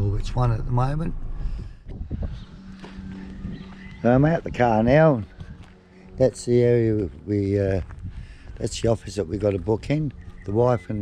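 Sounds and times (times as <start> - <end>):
steady low hum: 0.0 - 11.0
footsteps on gravel: 2.4 - 11.0.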